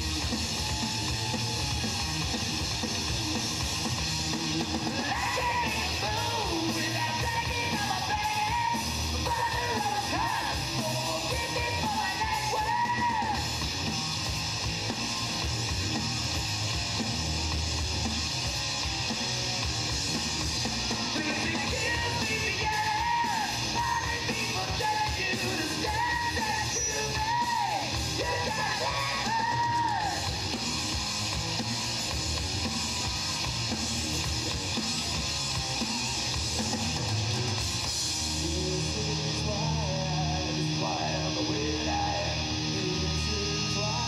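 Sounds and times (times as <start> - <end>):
thrash metal band playing: 0.0 - 44.0
singer yelling vocals: 4.9 - 13.5, 21.2 - 30.4, 38.4 - 44.0.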